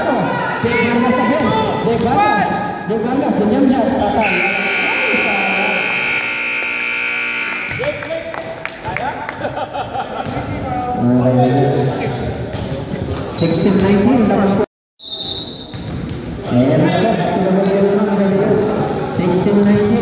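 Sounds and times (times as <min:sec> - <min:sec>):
players' voices: 0:00.0 - 0:14.6
scoreboard buzzer tone: 0:04.2 - 0:07.9
basketball bouncing on hardwood: 0:15.7 - 0:16.3.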